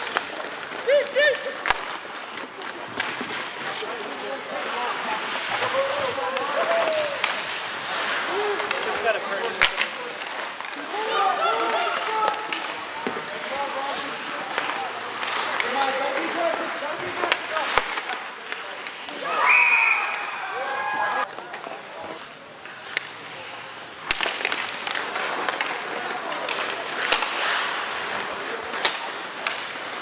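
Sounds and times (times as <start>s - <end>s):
skates hissing on ice: 0.0s - 9.3s, 26.6s - 30.0s
people shouting and calling: 0.7s - 1.6s, 4.9s - 9.0s, 10.7s - 17.8s, 19.1s - 21.3s
sharp crack: 1.0s - 2.1s, 6.3s - 10.9s, 16.5s - 19.2s, 24.0s - 30.0s.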